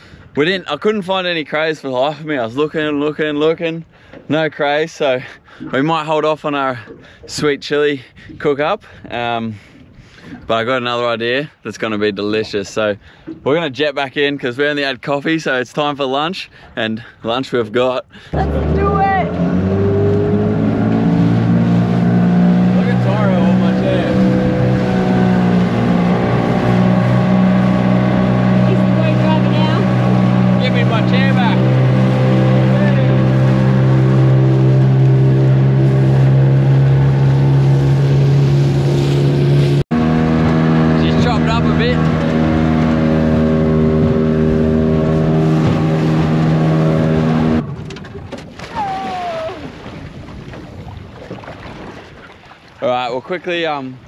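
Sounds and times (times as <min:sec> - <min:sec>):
outboard motor droning: 0:18.2 - 0:53.6.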